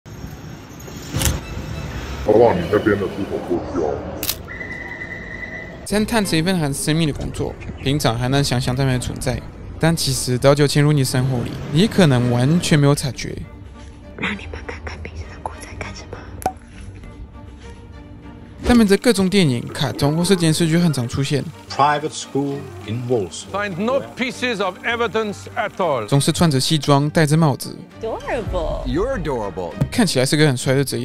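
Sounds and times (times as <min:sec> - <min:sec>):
street traffic rumble: 0:00.1 - 0:18.5
person whispering: 0:14.2 - 0:16.3.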